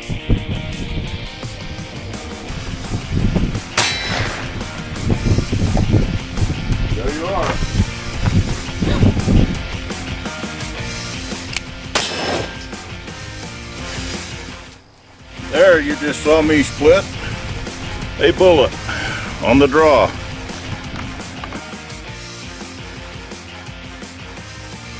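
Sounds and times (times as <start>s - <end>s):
background music: 0.0s - 24.9s
pistol shots: 3.8s - 4.9s, 11.5s - 13.0s.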